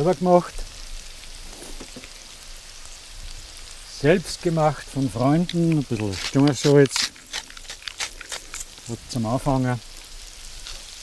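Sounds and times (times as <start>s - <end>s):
oil sizzling in a wok: 0.0s - 11.0s.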